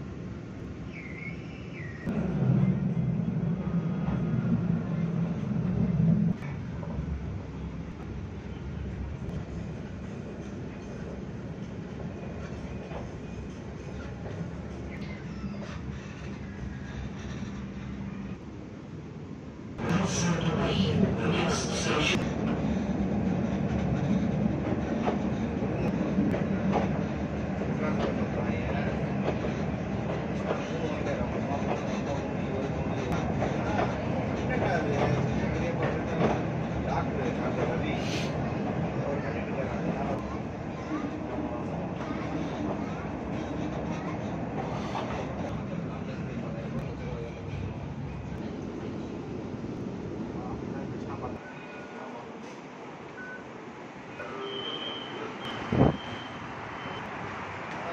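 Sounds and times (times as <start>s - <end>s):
tram wheels rumbling on rail: 0.0s - 53.1s
train running noise: 0.0s - 57.9s
faint squeaks and clicks: 12.4s - 18.4s.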